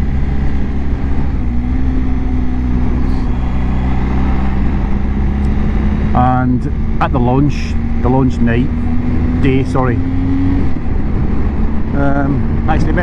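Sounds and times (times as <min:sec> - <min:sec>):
wind noise on microphone: 0:00.0 - 0:07.2, 0:07.8 - 0:13.0
motorcycle engine hum: 0:00.0 - 0:13.0
road rumble: 0:00.0 - 0:13.0.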